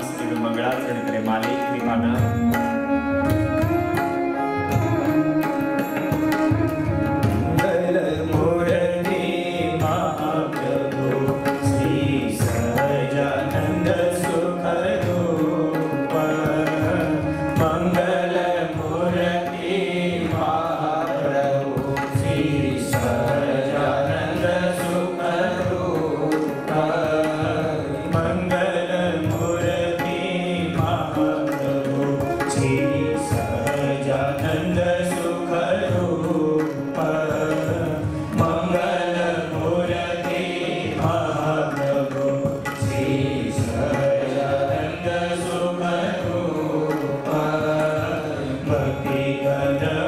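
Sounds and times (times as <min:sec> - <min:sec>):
man singing a devotional chant: 0:00.0 - 0:50.0
tabla: 0:00.0 - 0:50.0
violin: 0:00.0 - 0:50.0.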